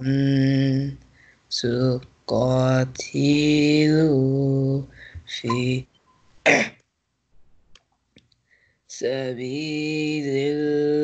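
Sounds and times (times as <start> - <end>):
person clearing throat: 6.4 - 6.8.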